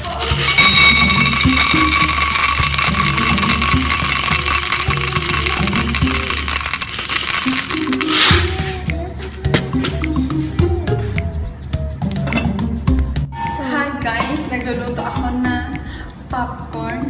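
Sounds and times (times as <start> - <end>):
popcorn kernels pouring into pot: 0.0 - 8.8
background music with steady beat: 0.0 - 17.0.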